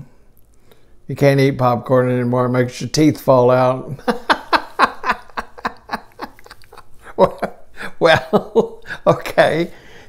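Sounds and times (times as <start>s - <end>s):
elderly man laughing: 4.0s - 9.7s.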